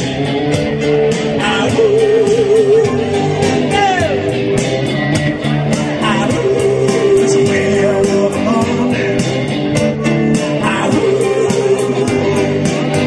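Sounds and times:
drums with cymbal beat: 0.0s - 13.0s
electric guitar: 0.0s - 13.0s
man singing: 1.3s - 4.4s, 5.8s - 13.0s.

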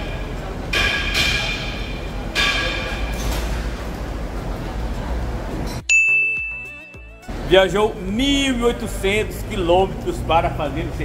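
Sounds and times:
high ding: 5.8s - 7.2s
repeating ringing tone: 5.9s - 7.2s.

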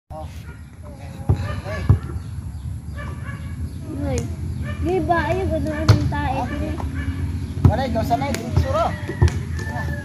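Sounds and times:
men calling out: 0.3s - 2.3s.

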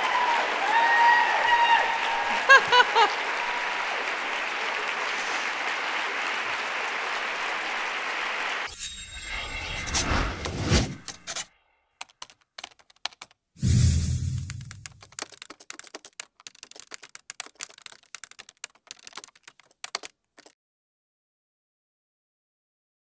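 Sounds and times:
audience applauding: 0.0s - 8.7s, 14.4s - 20.5s.

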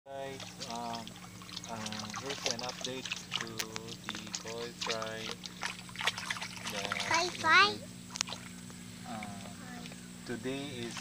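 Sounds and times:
faint running water: 0.1s - 11.0s
low hum: 0.1s - 11.0s
man talking: 1.7s - 5.4s.

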